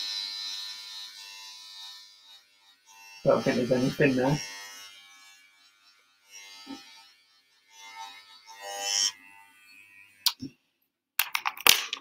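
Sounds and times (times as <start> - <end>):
electric hair clippers buzzing: 0.0 - 10.4
sharp clicks and knocks: 11.2 - 12.0.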